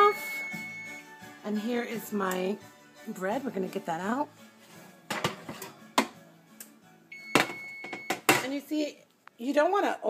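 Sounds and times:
oven electronic beep: 0:00.0 - 0:01.1, 0:07.1 - 0:08.3.

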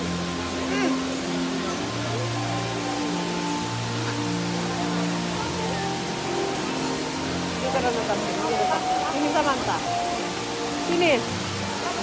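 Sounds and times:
slow sustained music notes: 0:00.0 - 0:12.0
steady background hiss: 0:00.0 - 0:12.0.

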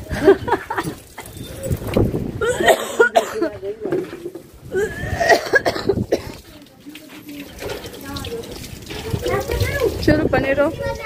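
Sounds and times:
person coughing: 0:02.4 - 0:03.5, 0:04.7 - 0:06.4.

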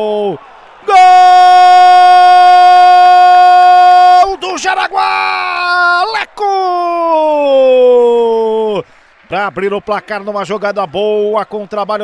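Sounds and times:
commentator's long shout: 0:00.0 - 0:12.0.

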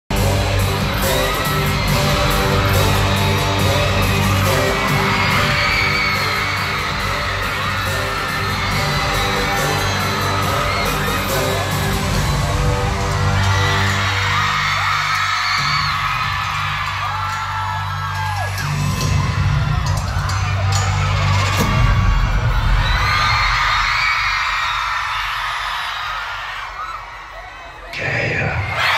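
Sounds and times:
loud intro music with bass drone: 0:00.1 - 0:24.0
crowd screaming and cheering: 0:00.1 - 0:28.9.

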